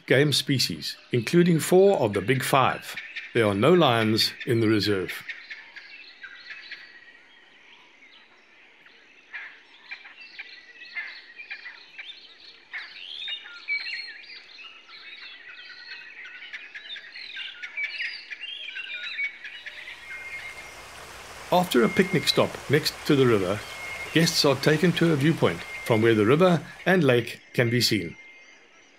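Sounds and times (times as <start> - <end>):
birds chirping and trilling: 19.4 - 28.9
steady hiss: 19.6 - 27.3.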